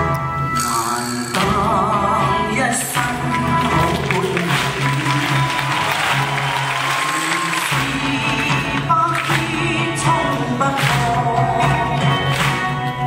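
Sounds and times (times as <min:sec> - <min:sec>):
bass line: 0:00.0 - 0:13.0
live band playing: 0:00.0 - 0:13.0.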